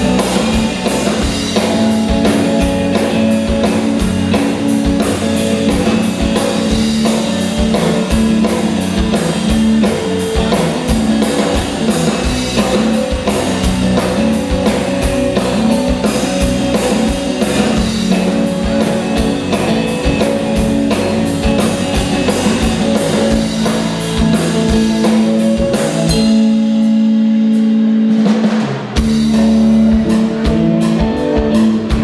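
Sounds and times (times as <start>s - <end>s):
drum kit: 0.0s - 32.0s
electric bass: 0.0s - 32.0s
electric guitar: 0.0s - 32.0s.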